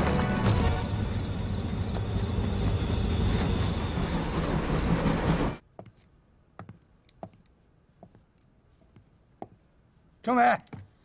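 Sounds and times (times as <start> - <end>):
freight train wagons rumbling: 0.4 - 5.7.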